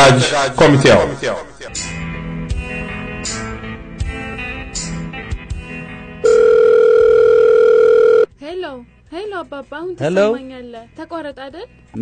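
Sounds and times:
electronic telephone tone: 0:06.2 - 0:08.3.

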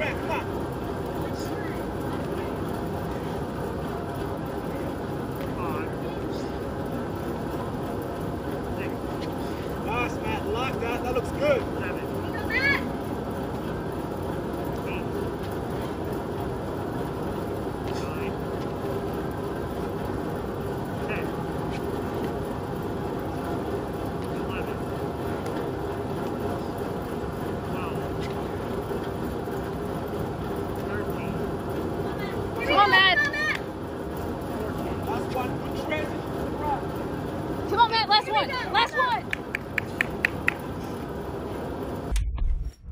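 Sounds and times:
drum fan humming: 0:00.0 - 0:42.4.

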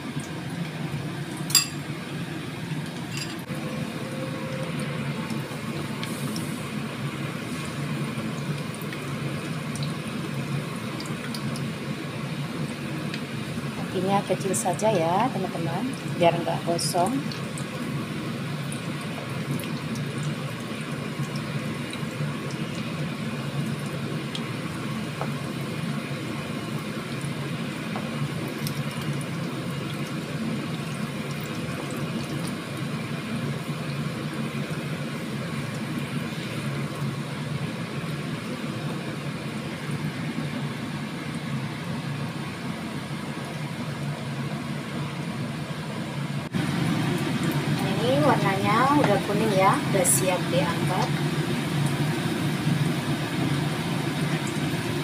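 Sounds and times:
fritters sizzling in hot oil: 0:00.0 - 0:55.0.

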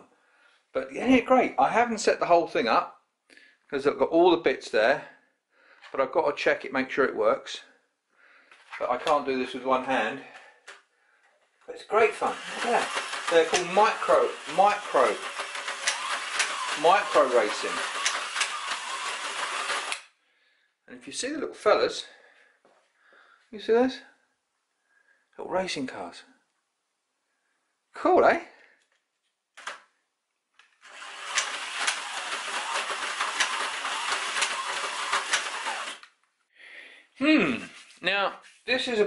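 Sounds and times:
slot car motor whirring: 0:12.1 - 0:20.0, 0:30.8 - 0:36.1
sharp clicks: 0:15.2 - 0:16.8, 0:17.8 - 0:20.1, 0:30.6 - 0:36.3
small clicks: 0:15.4 - 0:16.7, 0:17.9 - 0:18.9, 0:28.7 - 0:32.0.

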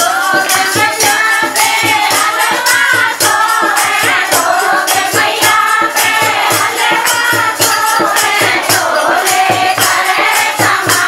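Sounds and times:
hand clapping: 0:00.0 - 0:11.0
hand drum fast rhythm: 0:00.0 - 0:11.0
women singing folk song: 0:00.0 - 0:11.0.

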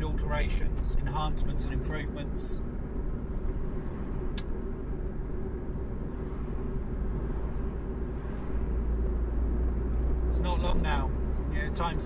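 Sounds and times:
car engine and road noise: 0:00.0 - 0:12.0
sharp click: 0:04.4 - 0:04.6.

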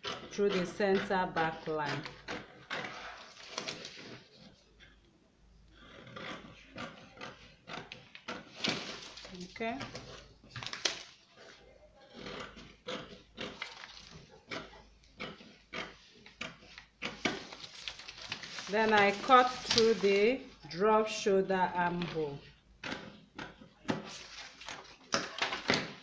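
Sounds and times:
scissors snipping paper: 0:00.0 - 0:04.5, 0:12.1 - 0:20.8
paper rustling: 0:02.8 - 0:04.6, 0:08.5 - 0:11.6, 0:13.5 - 0:14.3, 0:16.6 - 0:20.8, 0:24.0 - 0:26.0.

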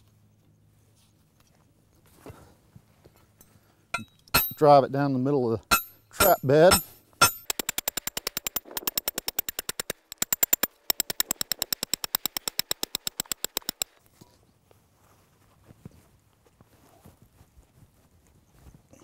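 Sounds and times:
hammer striking steel rod: 0:04.0 - 0:04.7, 0:05.6 - 0:13.9.

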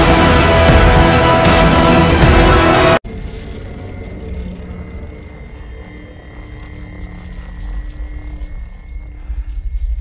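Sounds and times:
faint drone of held tones: 0:03.1 - 0:10.0.

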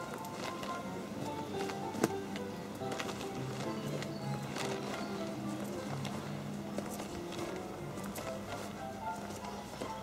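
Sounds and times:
music with held notes: 0:00.0 - 0:10.0.

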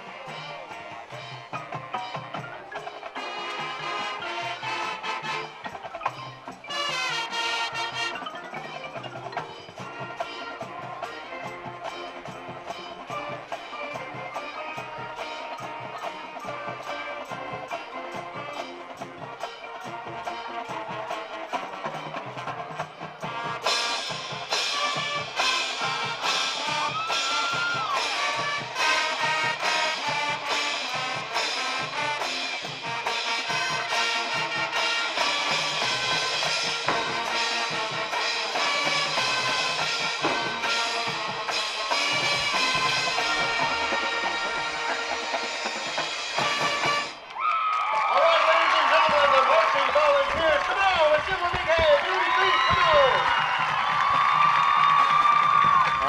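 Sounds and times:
mallet percussion: 0:00.0 - 0:47.3
brass: 0:00.0 - 0:47.4
drums: 0:00.0 - 0:56.0.

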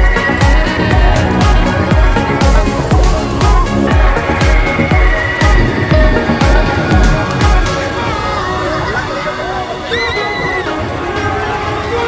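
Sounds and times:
loud fairground music: 0:00.0 - 0:12.0.

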